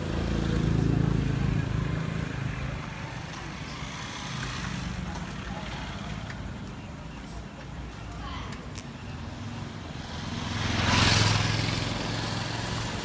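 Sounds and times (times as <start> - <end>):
street background noise: 0.0 - 13.0
vehicle engine passing: 10.0 - 13.0.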